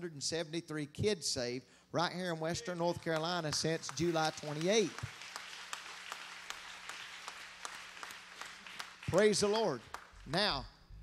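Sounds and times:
congregation clapping: 0:02.6 - 0:10.6.

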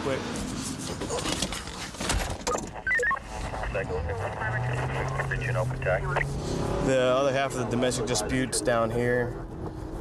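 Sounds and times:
indistinct voices: 0:02.9 - 0:08.9
car engine running: 0:03.2 - 0:09.2.

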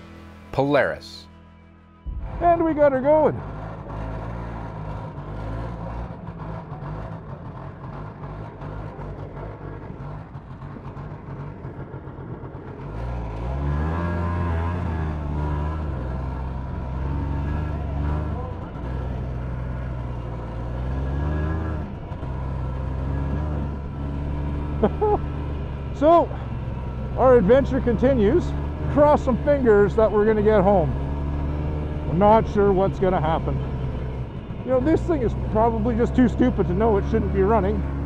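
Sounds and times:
snowmobile engine revving: 0:02.1 - 0:38.0.

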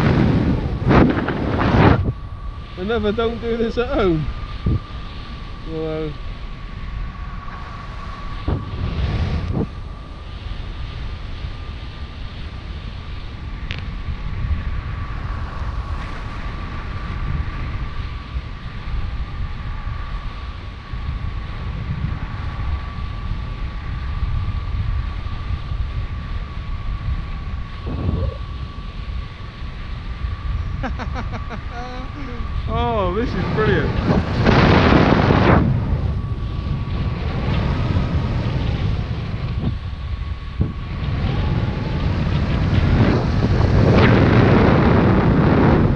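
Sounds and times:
wind buffeting microphone: 0:00.0 - 0:45.9
thin steady high tone: 0:30.5 - 0:33.8.

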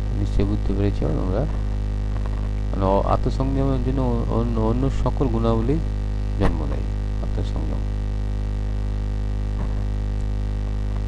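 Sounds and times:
loud electrical hum: 0:00.0 - 0:11.0.

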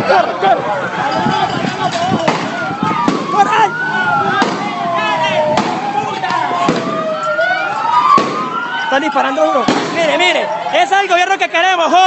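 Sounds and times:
sirens wailing: 0:00.0 - 0:12.0
sharp bangs: 0:02.0 - 0:07.2, 0:08.0 - 0:08.7, 0:09.6 - 0:10.2.

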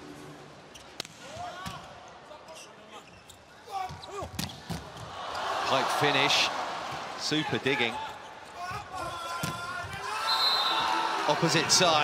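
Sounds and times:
sneakers squeaking on court: 0:02.5 - 0:05.0
crowd noise: 0:04.8 - 0:12.0.

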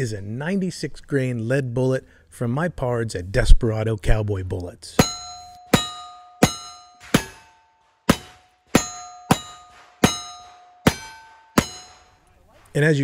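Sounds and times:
steel target ringing: 0:05.0 - 0:12.2.

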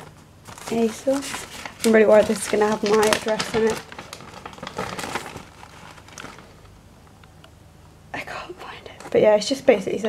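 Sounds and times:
plastic bag rustling: 0:00.0 - 0:06.8.

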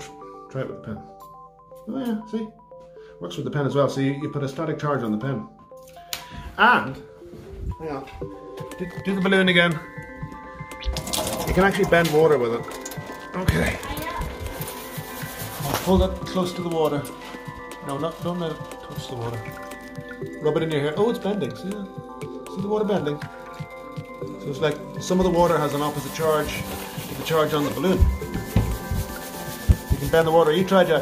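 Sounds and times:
balloon rubbing on microphone: 0:25.9 - 0:30.4.

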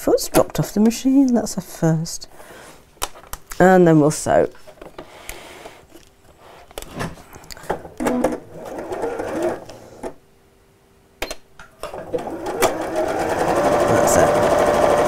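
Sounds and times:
sewing machine stitching: 0:08.1 - 0:09.7, 0:11.8 - 0:15.0.

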